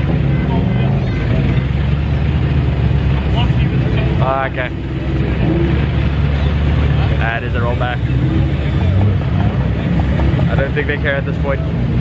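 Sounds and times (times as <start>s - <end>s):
vehicle engine labouring: 0.0s - 12.0s.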